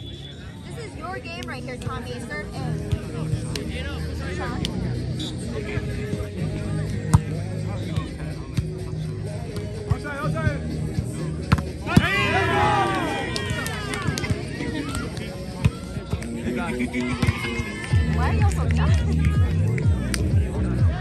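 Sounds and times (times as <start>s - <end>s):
music: 0.0s - 21.0s
many voices shouting: 11.9s - 15.1s.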